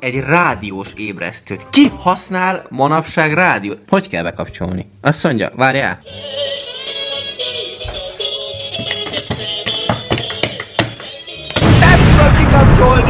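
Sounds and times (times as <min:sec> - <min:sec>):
loud explosion-like blast: 0:11.6 - 0:13.0.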